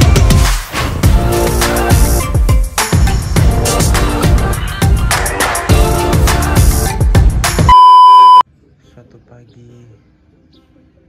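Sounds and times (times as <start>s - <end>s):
loud electronic beep: 7.7s - 8.4s.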